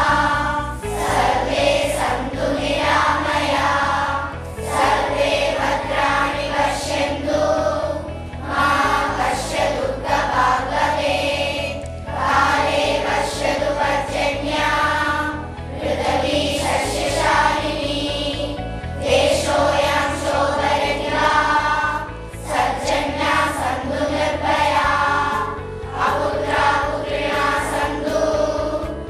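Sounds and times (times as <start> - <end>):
children's choir singing: 0.0 - 29.0.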